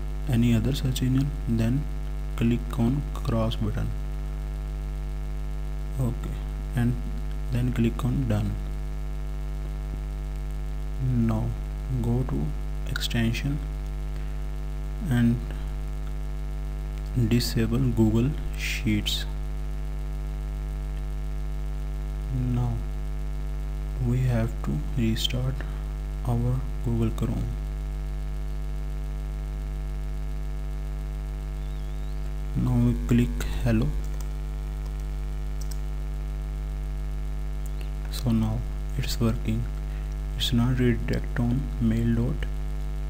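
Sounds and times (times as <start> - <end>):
electrical mains hum: 0.0 - 43.0.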